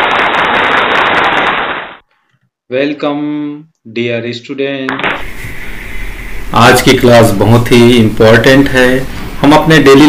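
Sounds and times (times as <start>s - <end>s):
loud steady crackling: 0.0s - 2.0s, 5.0s - 9.0s.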